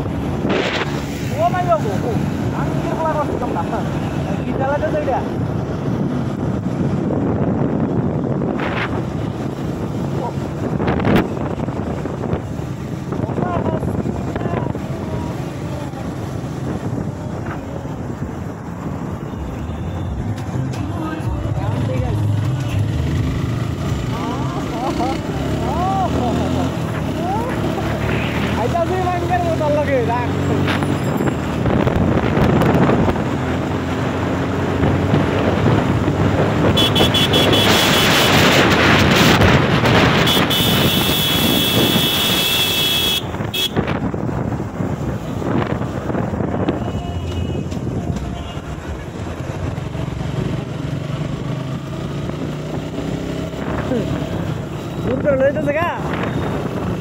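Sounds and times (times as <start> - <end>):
wind rushing on microphone: 0.0 - 42.5, 43.2 - 57.0.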